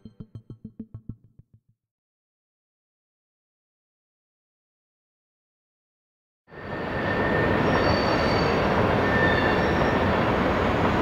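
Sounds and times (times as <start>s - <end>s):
high wheel squeals: 6.6s - 10.1s
train rumbling: 6.6s - 11.0s.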